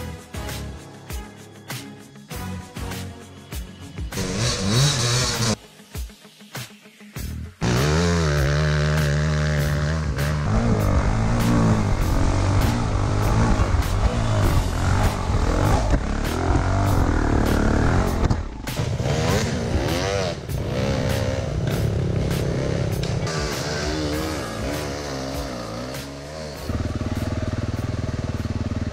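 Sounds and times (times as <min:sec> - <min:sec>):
music with steady beat: 0:00.0 - 0:28.5
dirt bike engine revving: 0:04.2 - 0:05.6, 0:07.6 - 0:28.9.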